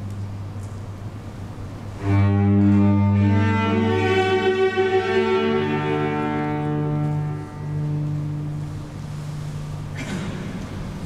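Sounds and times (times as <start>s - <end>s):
cello holding a low note: 1.9s - 9.9s.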